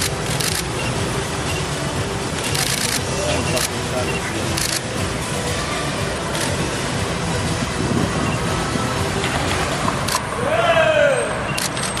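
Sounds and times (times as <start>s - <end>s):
crowd voices: 0.0s - 12.0s
outdoor background noise: 0.0s - 12.0s.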